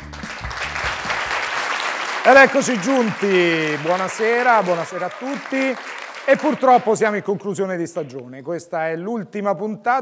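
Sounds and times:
background music: 0.0s - 7.2s
audience applauding: 0.0s - 7.3s.

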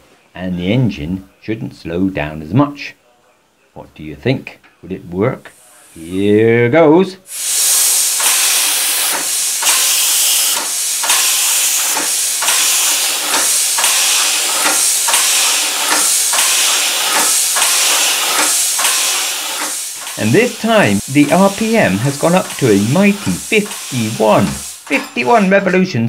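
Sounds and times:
compressed air hissing: 5.5s - 6.4s, 7.3s - 25.8s
valve gear clicks: 7.6s - 25.4s.

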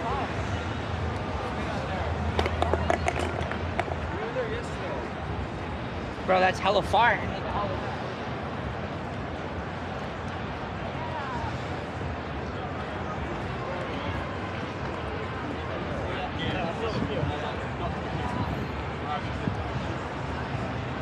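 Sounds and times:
distant people talking: 0.0s - 21.0s
street noise: 0.0s - 21.0s.

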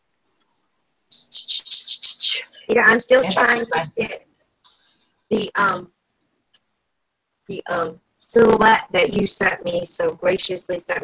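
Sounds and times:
bird chirping: 1.1s - 4.1s.

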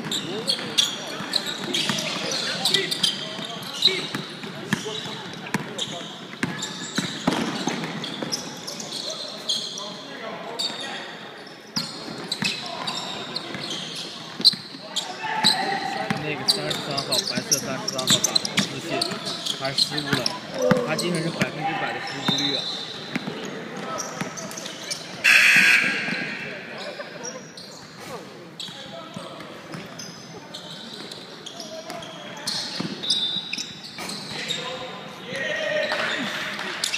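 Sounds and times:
sneaker squeaks: 0.0s - 35.0s.

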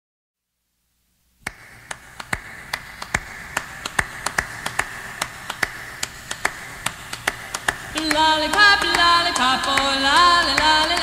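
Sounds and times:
vinyl record hiss: 0.4s - 11.0s.

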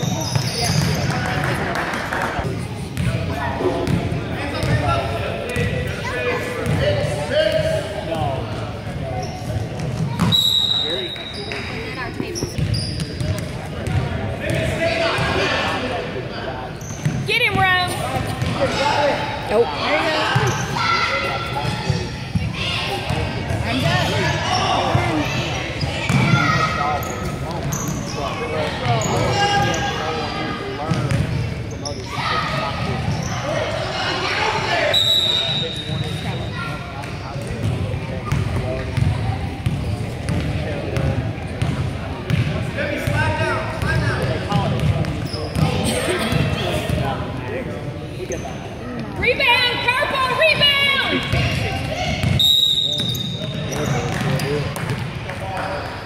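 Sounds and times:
people shouting and chattering: 0.0s - 56.0s.

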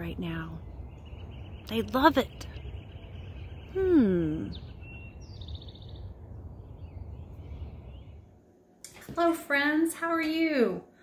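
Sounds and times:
songbirds chirping: 0.0s - 9.5s
low outdoor rumble: 0.0s - 11.0s.

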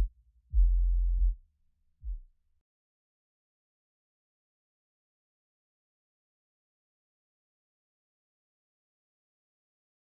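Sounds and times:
deep synthesizer bass notes: 0.0s - 1.4s.

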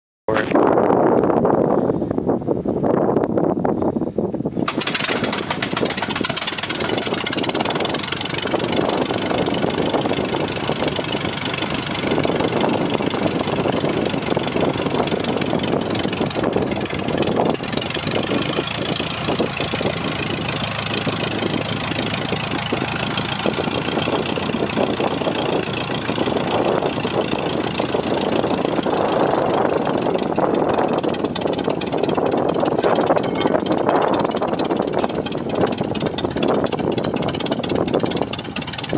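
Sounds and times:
aircraft engine idling: 4.5s - 38.9s.

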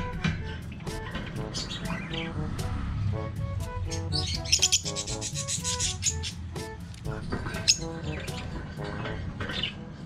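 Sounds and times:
background music: 0.0s - 10.0s
bird chirping: 0.5s - 2.4s, 3.8s - 6.4s, 7.3s - 9.9s.

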